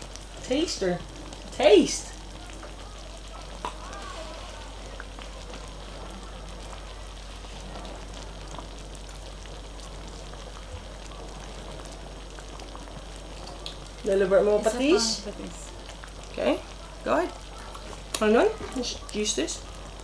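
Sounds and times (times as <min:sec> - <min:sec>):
stew simmering and bubbling: 0:00.0 - 0:20.0.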